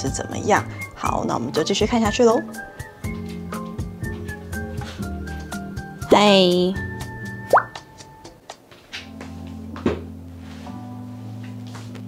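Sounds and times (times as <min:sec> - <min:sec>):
light background music: 0:00.0 - 0:12.0
upward-gliding bloop pop: 0:07.5 - 0:07.8.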